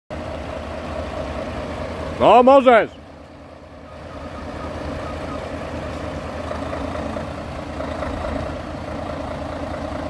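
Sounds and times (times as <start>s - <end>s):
diesel truck engine idling: 0.1s - 10.0s.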